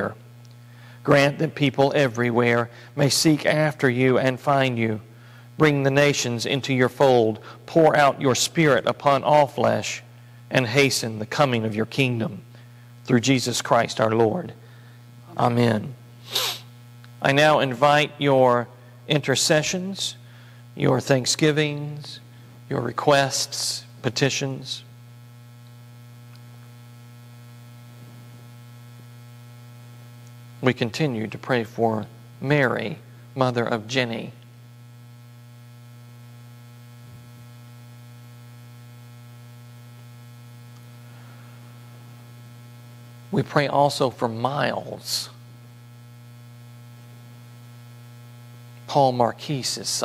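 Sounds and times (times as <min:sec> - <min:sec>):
low electrical mains hum: 0:00.0 - 0:50.0.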